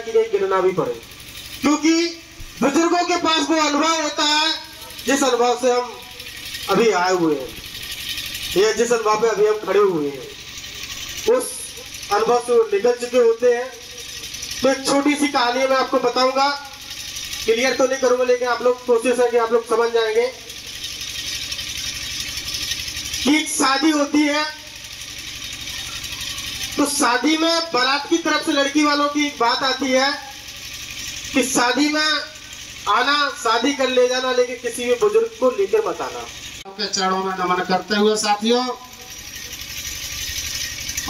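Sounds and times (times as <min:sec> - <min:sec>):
low pulsing engine hum: 0:00.0 - 0:41.0
open-air background hiss: 0:00.0 - 0:41.0.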